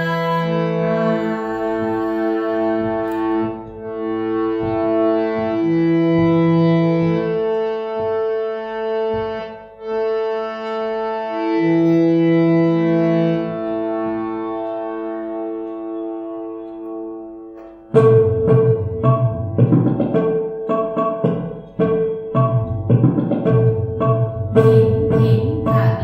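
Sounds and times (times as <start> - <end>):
harmonium sustained notes: 0.0 - 19.6, 24.3 - 26.0.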